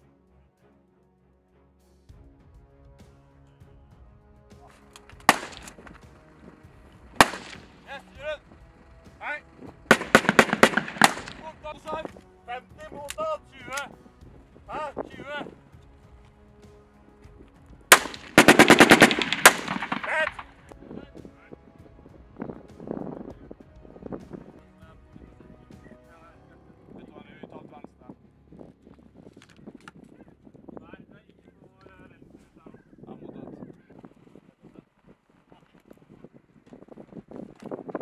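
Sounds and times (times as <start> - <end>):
small-arms gunfire: 5.1 - 5.8, 7.2 - 7.7, 9.9 - 11.6, 17.9 - 20.5.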